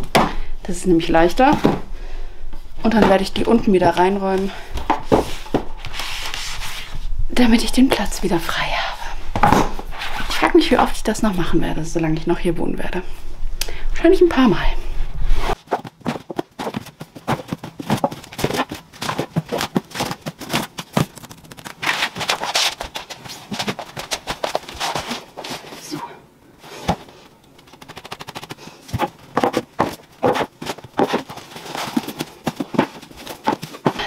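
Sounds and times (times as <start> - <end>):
books knocking and rustling: 4.8 - 6.2, 15.5 - 25.8, 26.7 - 27.2, 28.9 - 34.0.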